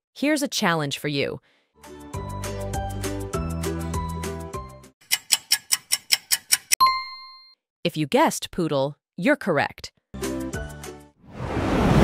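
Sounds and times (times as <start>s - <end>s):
background music: 1.8s - 4.9s, 10.2s - 11.2s
countdown timer ticking: 5.0s - 7.6s.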